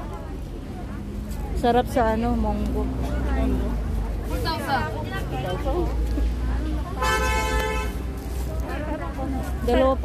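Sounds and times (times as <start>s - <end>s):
voices: 0.0s - 10.0s
vehicle horn: 7.0s - 8.0s.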